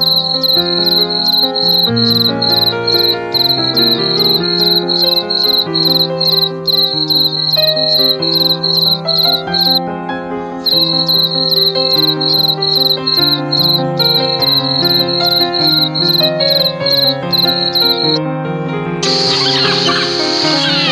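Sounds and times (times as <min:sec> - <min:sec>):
cricket chirping: 0:00.0 - 0:09.8, 0:10.6 - 0:18.2.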